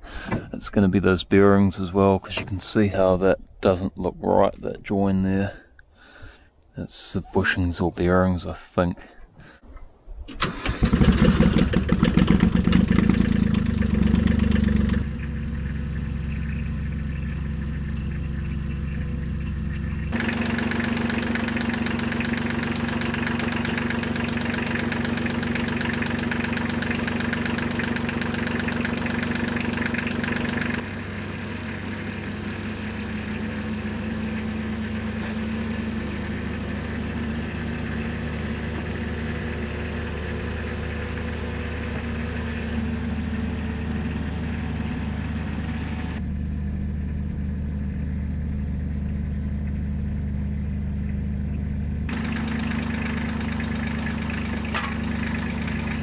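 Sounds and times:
small diesel engine running: 0:10.4 - 0:56.0.

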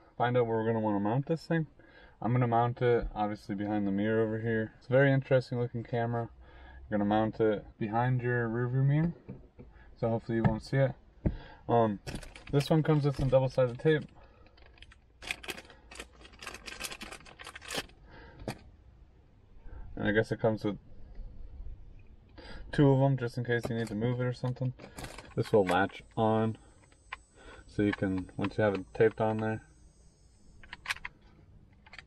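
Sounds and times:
plastic mount crackles and clicks: 0:27.8 - 0:29.5, 0:30.6 - 0:31.2.

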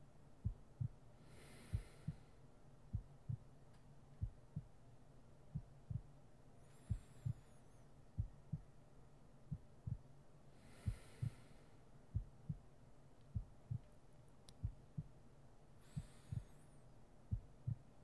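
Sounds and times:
faint low hum: 0:00.0 - 0:18.0
soft hiss: 0:00.0 - 0:18.0
slow heartbeat thumps: 0:00.4 - 0:01.0, 0:01.6 - 0:02.3, 0:02.9 - 0:03.5, 0:04.2 - 0:04.8, 0:05.5 - 0:06.1, 0:06.7 - 0:07.5, 0:08.2 - 0:08.8, 0:09.5 - 0:10.1, 0:10.8 - 0:11.5, 0:12.1 - 0:12.7, 0:13.3 - 0:14.0, 0:14.6 - 0:15.2, 0:15.8 - 0:16.6, 0:17.3 - 0:18.0.

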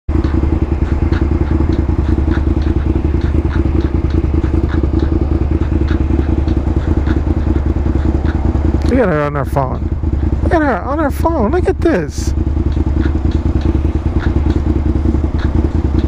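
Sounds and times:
motorcycle engine idling: 0:00.1 - 0:16.0.

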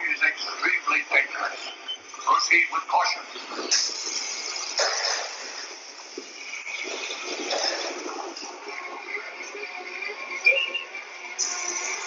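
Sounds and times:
ride vehicle running: 0:00.0 - 0:12.0
hiss of machinery noise: 0:03.6 - 0:08.5, 0:11.0 - 0:12.0.

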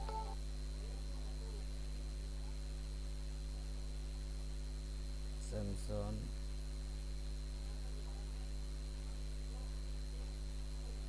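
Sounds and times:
thin high whine: 0:00.0 - 0:00.4
electrical mains hum: 0:00.0 - 0:11.0.

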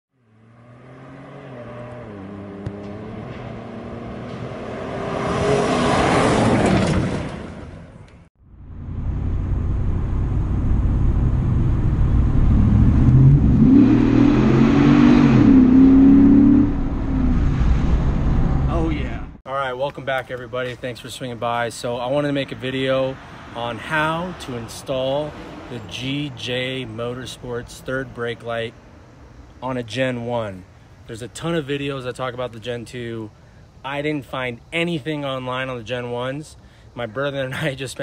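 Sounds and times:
truck engine revving: 0:00.3 - 0:07.7, 0:08.6 - 0:19.4.

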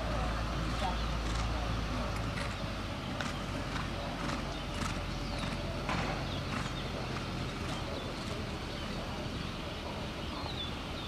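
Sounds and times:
steady low background noise: 0:00.0 - 0:11.0
horse hoofbeats on dirt: 0:00.6 - 0:09.0.

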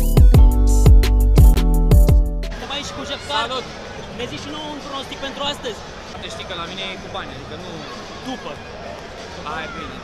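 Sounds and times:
background murmur: 0:02.5 - 0:10.0
people talking over one another: 0:02.5 - 0:10.0.

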